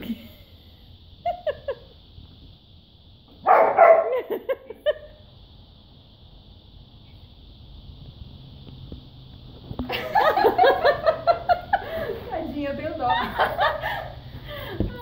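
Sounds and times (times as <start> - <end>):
dog barking and yipping: 3.4 - 4.3.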